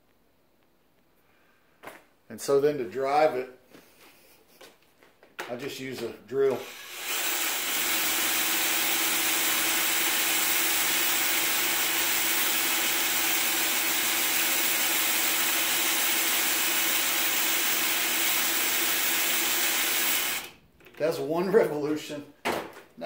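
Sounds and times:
cordless drill motor whine: 6.5 - 20.5.

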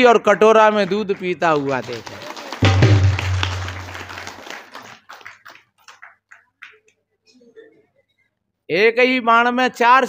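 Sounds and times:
deep drum stroke: 2.6 - 4.0.

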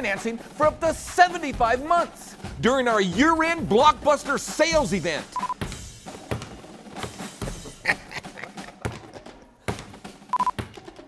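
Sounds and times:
short high beep: 5.4 - 5.6
basketball bouncing on hard floor: 5.6 - 6.6.

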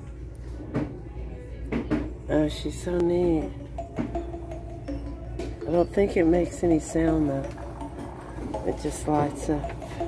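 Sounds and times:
faint shop background music: 0.0 - 10.0
low steady hum: 0.0 - 10.0.

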